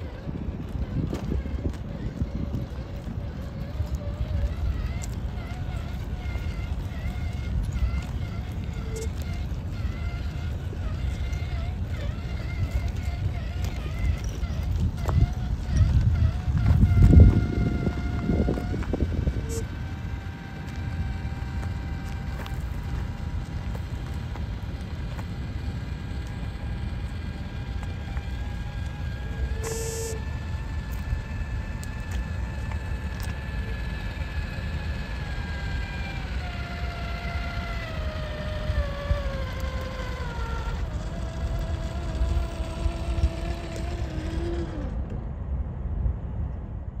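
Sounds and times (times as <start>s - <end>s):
electric motor whine: 0.0s - 45.4s
steady low rumble: 0.0s - 47.0s.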